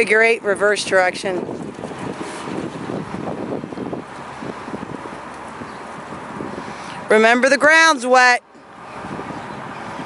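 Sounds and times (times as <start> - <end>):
wind buffeting microphone: 0.0 - 8.0, 8.6 - 10.0.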